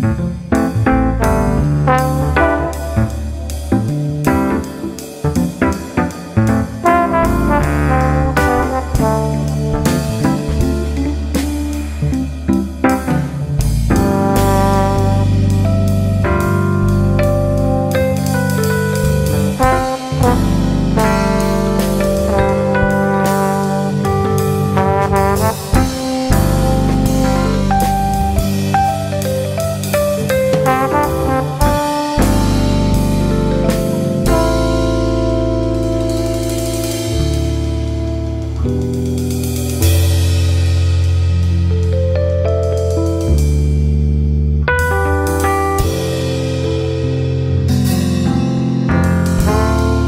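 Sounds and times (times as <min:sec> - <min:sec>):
bass line: 0:00.0 - 0:50.0
drum kit: 0:00.0 - 0:50.0
instrumental lounge jazz: 0:00.0 - 0:50.0
held brass notes: 0:01.2 - 0:05.0, 0:06.4 - 0:13.0, 0:13.6 - 0:40.6, 0:49.3 - 0:50.0.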